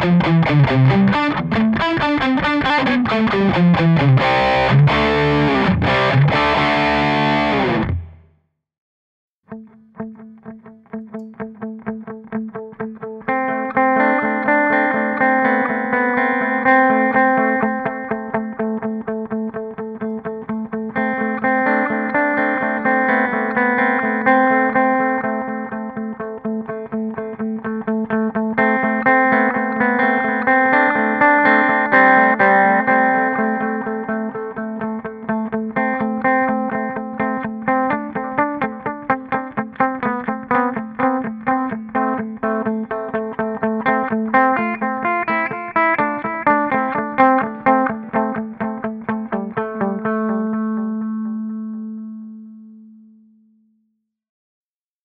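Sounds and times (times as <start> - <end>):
electric guitar with delay: 0.0 - 8.2, 9.5 - 53.2.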